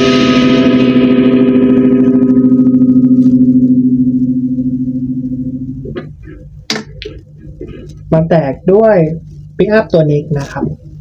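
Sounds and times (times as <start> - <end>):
distorted electric guitar chord: 0.0 - 7.0.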